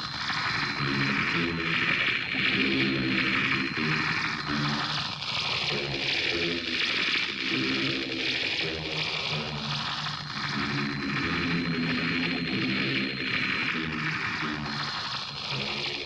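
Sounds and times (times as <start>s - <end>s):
thin high whine: 0.0s - 8.3s.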